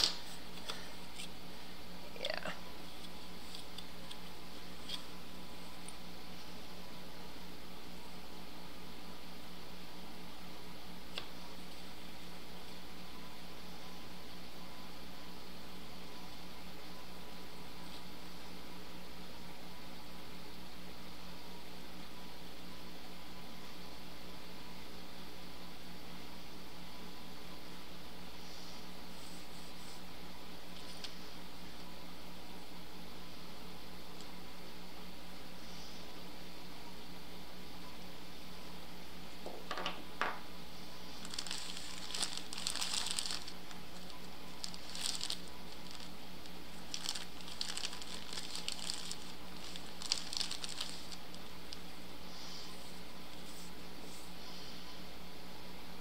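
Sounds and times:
low background hum with hiss: 0.0 - 56.0.

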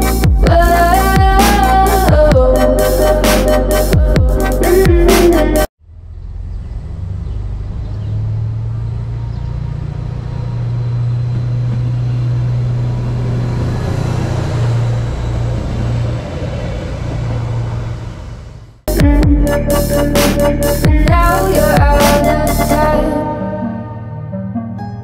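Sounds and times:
diesel train passing: 5.9 - 18.9.

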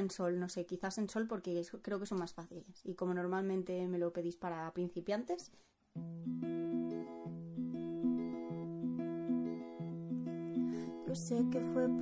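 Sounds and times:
acoustic guitar picking chords: 5.9 - 12.0.

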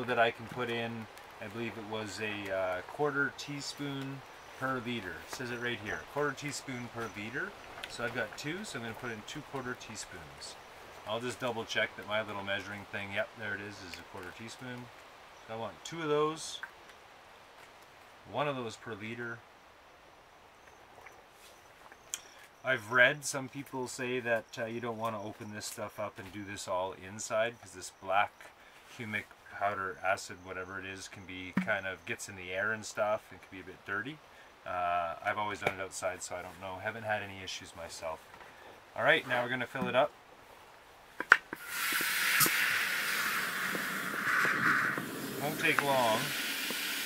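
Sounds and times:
water hissing into bottle: 41.6 - 47.0.

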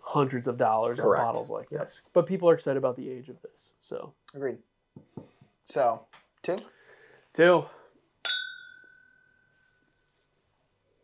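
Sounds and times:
glasses clinking: 8.2 - 9.8.

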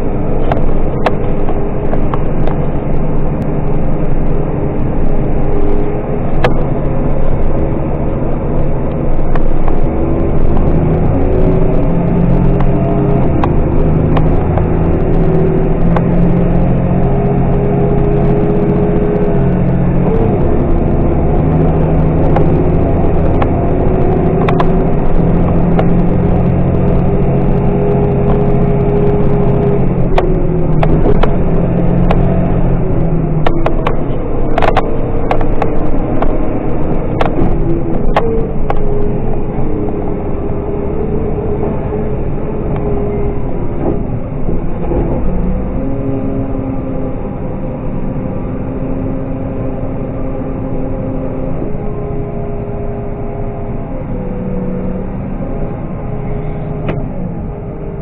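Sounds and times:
diesel engine droning under load: 0.0 - 58.0.

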